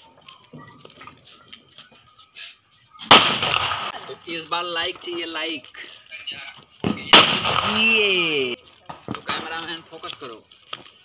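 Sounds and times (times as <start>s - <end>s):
firecracker bang: 3.0s - 5.3s, 6.8s - 9.9s.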